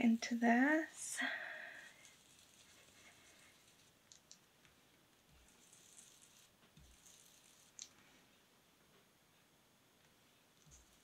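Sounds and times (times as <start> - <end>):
sponge rubbing on paper: 1.8 - 4.0, 5.3 - 7.8.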